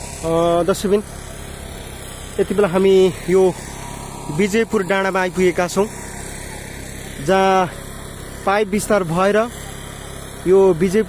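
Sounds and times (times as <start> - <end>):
engine running: 0.0 - 11.0
man speaking: 4.3 - 6.0.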